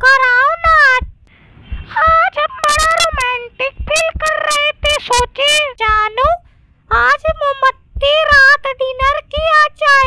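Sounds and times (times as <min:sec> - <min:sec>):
high-pitched cartoon girl's voice: 0:00.0 - 0:01.1, 0:01.9 - 0:10.0.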